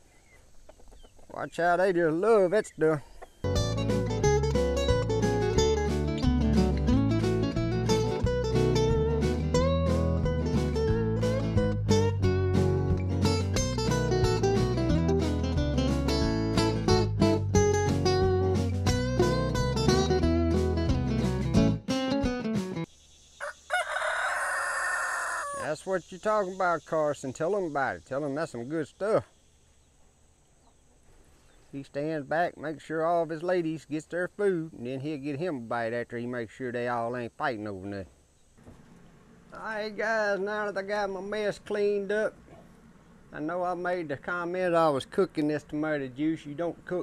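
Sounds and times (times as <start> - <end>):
guitar music with beat: 3.5 - 22.9
rooster crowing: 23.4 - 25.7.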